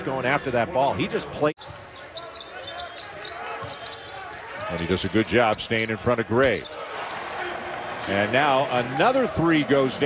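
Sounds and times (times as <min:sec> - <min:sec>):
sneakers squeaking: 0:01.6 - 0:07.2.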